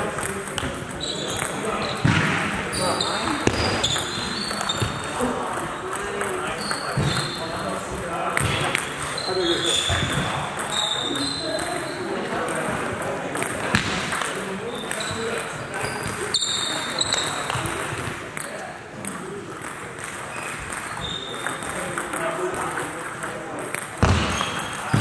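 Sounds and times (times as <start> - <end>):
short high squeaks: 15.8 - 17.3.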